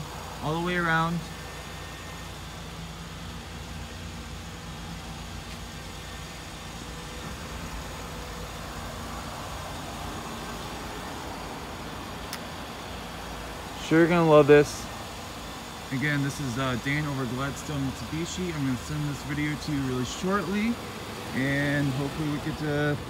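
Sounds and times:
car engine idling: 0.0s - 23.0s.

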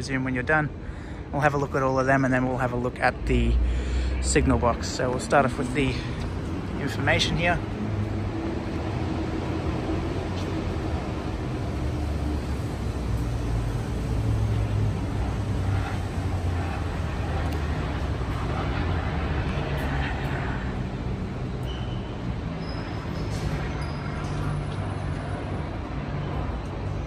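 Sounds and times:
road traffic rumble: 0.0s - 27.0s.

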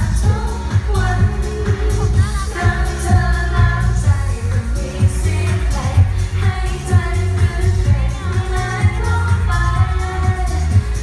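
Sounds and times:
pop accompaniment with bass drum: 0.0s - 11.0s
woman singing into a microphone: 0.0s - 11.0s.

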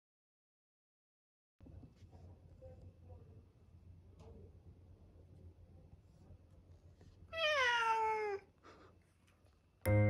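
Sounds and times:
cat meowing: 7.3s - 8.5s.

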